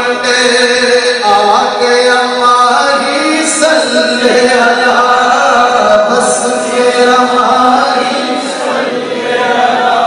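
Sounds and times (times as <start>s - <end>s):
man singing into a microphone: 0.0s - 8.7s.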